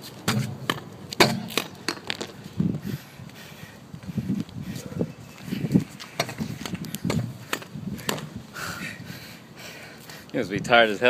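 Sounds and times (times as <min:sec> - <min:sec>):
dull thuds on concrete: 0:00.3 - 0:02.0, 0:06.2 - 0:08.3.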